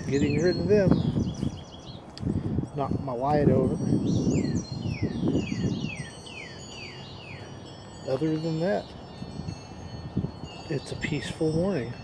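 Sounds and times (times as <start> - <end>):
faint high ringing tones: 0.0 - 12.0
songbird singing: 0.0 - 12.0.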